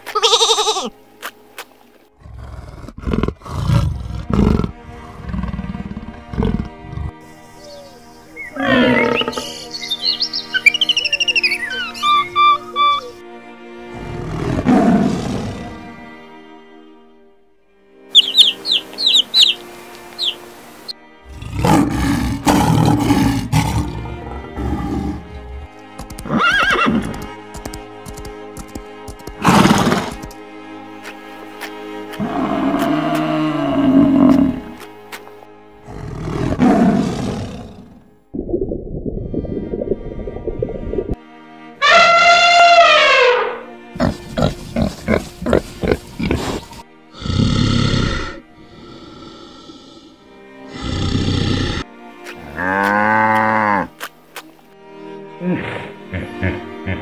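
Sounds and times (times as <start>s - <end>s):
background music: 0.0s - 57.0s
low drawn-out animal call: 2.2s - 13.2s
chicks cheeping: 18.2s - 19.6s, 20.2s - 20.4s.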